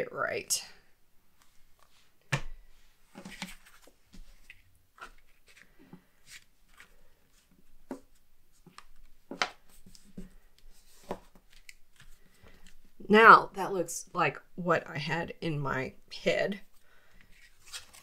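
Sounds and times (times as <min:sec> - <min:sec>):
paper rustling and tapping: 0:07.8 - 0:10.3.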